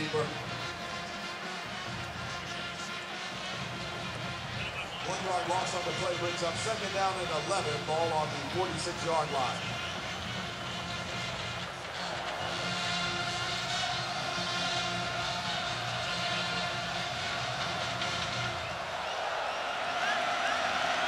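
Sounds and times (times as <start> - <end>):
crowd noise: 0.0 - 21.0
music over stadium speakers: 0.0 - 21.0.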